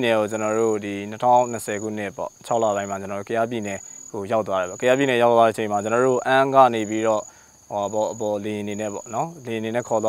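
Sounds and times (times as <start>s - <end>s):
crickets trilling: 0.0s - 10.0s
man speaking: 0.0s - 10.0s.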